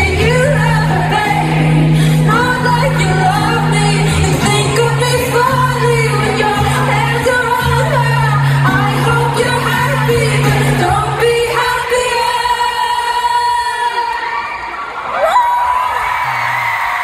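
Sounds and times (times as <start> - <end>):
acoustic guitar: 0.0 - 13.3
woman singing pop ballad: 0.0 - 14.5.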